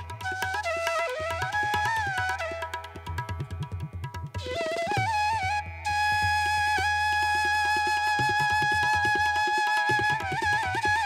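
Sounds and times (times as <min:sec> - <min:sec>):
flute melody: 0:00.0 - 0:03.4, 0:04.2 - 0:11.0
percussion rhythm: 0:00.0 - 0:11.0.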